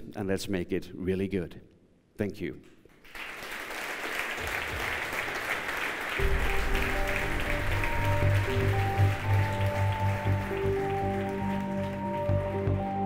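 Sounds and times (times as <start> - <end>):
audience applause: 3.0 - 13.0
instrumental music with bass line: 6.2 - 13.0.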